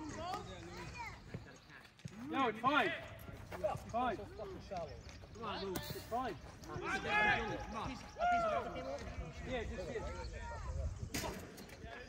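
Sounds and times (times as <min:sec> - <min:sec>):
men talking: 0:00.0 - 0:12.0
low wind rumble: 0:06.6 - 0:11.4.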